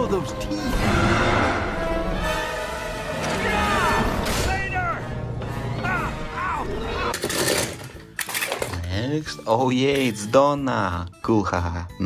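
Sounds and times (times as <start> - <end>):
toy cars clattering: 7.1 - 9.0.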